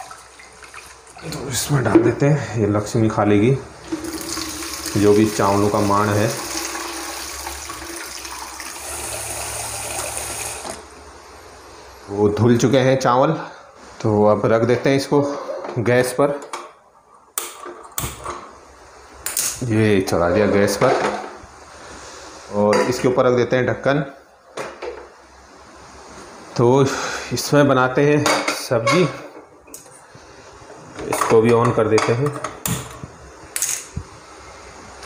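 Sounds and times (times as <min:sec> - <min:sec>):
water pouring into a bucket: 0:03.9 - 0:10.8.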